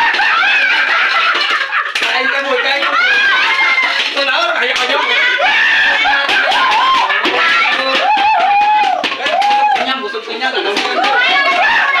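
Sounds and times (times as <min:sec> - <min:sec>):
people talking excitedly: 0:01.8 - 0:12.0.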